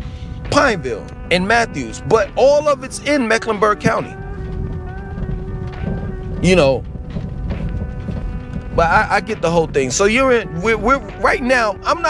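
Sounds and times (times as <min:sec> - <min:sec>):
held music note: 0:00.0 - 0:12.0
car rolling on gravel: 0:00.4 - 0:12.0.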